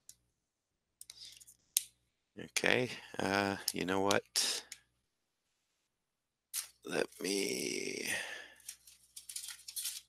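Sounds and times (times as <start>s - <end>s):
person speaking: 2.4s - 4.7s, 6.6s - 8.5s
drawing tools rattling on desk: 9.1s - 10.0s.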